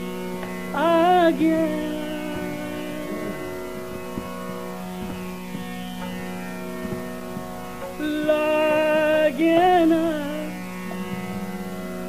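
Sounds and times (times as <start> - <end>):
tanpura drone: 0.0 - 12.0
soft melodic vocal glide: 0.7 - 4.5, 7.9 - 12.0.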